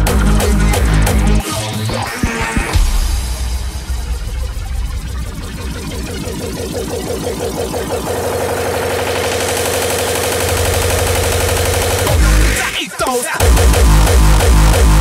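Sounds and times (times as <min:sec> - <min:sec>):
distorted hits roll: 0:00.0 - 0:15.0.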